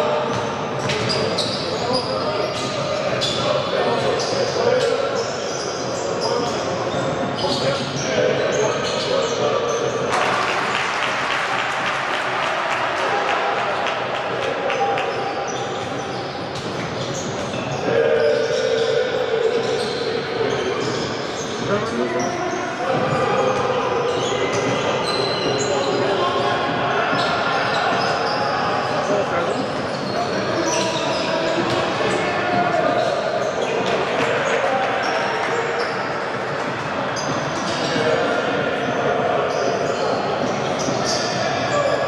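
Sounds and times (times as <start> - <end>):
voices in a hall: 0.0 - 42.0.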